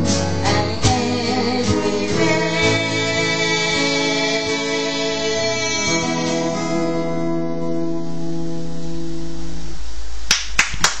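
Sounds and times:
acoustic guitar chord ringing: 0:00.0 - 0:09.8
sharp hand claps: 0:10.3 - 0:11.0.

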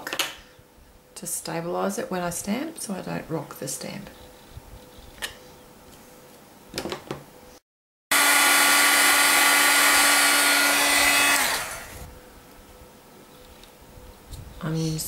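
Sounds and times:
heat tool fan whine: 0:00.0 - 0:15.0.

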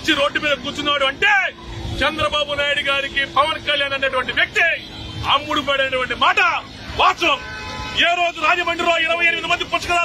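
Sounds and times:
man speaking forcefully: 0:00.0 - 0:10.0.

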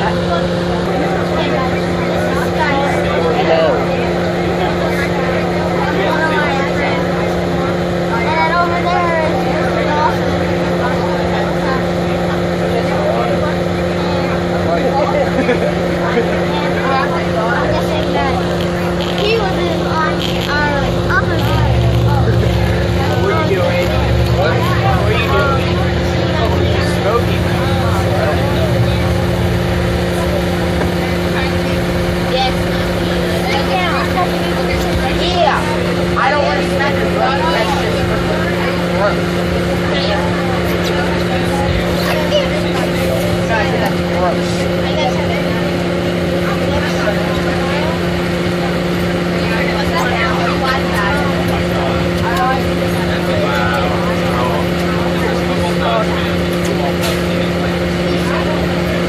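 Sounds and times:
bus engine droning: 0:00.0 - 0:59.0
indistinct passenger chatter: 0:00.0 - 0:59.0.

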